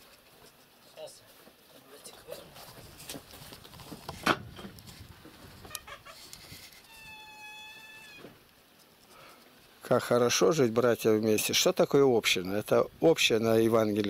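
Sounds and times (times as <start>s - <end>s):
faint animal cry: 6.8s - 8.4s.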